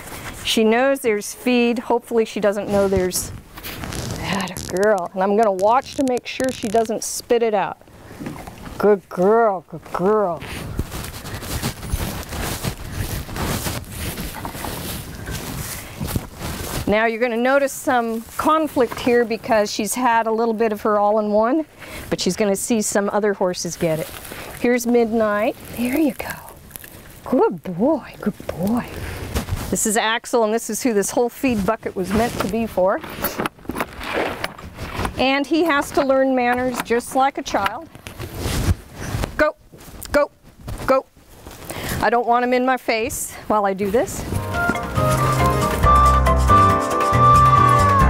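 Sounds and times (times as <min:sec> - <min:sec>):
clothing rustling: 0:02.6 - 0:06.1, 0:09.9 - 0:19.6, 0:23.6 - 0:27.2, 0:28.2 - 0:29.9, 0:36.6 - 0:42.0, 0:43.8 - 0:46.0
footsteps on gravel: 0:10.4 - 0:19.2, 0:44.2 - 0:45.9.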